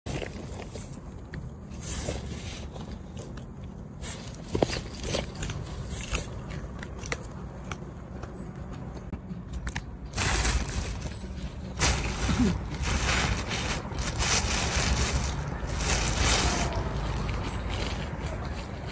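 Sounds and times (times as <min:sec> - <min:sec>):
plastic bag crinkling: 0:10.1 - 0:17.2.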